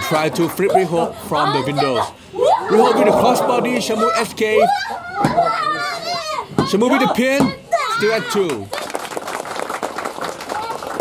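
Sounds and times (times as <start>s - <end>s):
crowd clapping: 8.5s - 11.0s.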